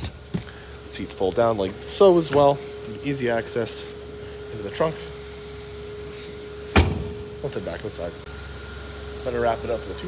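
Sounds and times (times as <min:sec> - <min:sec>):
car seatback latching clunk: 0:06.7 - 0:07.2.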